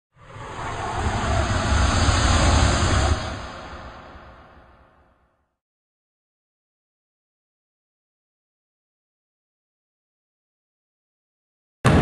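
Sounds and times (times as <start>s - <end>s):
rush of noise with deep rumble: 0.1s - 5.3s.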